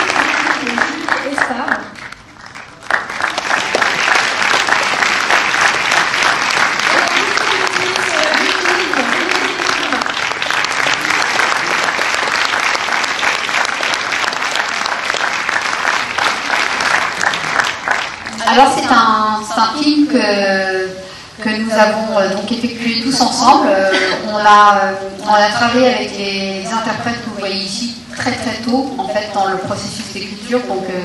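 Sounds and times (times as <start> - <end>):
audience applauding: 0.0 - 18.8.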